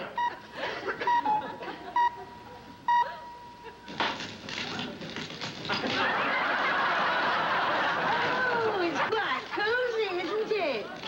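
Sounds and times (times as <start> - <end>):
studio audience laughing: 0.0 - 2.7, 5.8 - 11.0.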